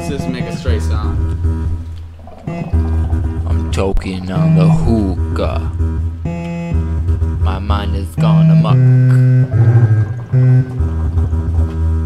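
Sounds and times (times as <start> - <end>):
electronic music: 0.0 - 12.0
low bass drone: 0.0 - 12.0
held note with overtones: 8.2 - 11.7.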